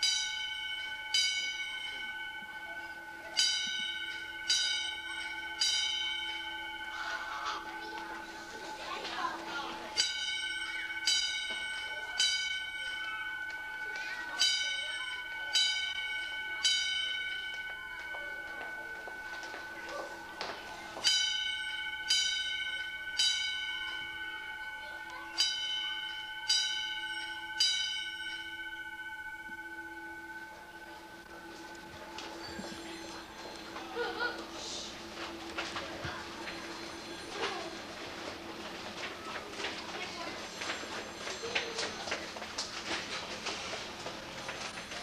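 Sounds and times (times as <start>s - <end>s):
fire alarm bell ringing: 0.0s - 45.0s.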